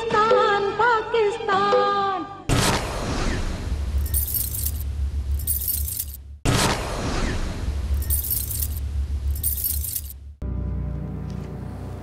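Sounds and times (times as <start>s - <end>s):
chains rattling and clinking: 4.0s - 6.2s, 8.0s - 10.2s.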